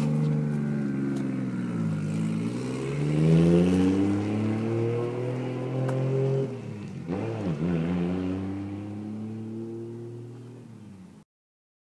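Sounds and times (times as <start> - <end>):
car engine: 0.0 - 11.2.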